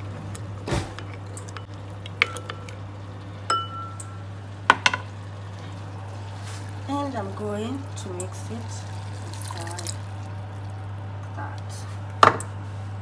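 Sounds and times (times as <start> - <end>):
steady low hum: 0.0 - 13.0
spoon clinking glass bowl: 3.5 - 4.2.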